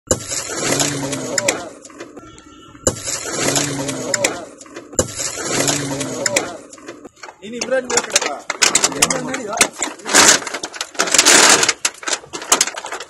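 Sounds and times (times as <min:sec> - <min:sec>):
men talking: 0:01.0 - 0:02.2, 0:03.3 - 0:10.1.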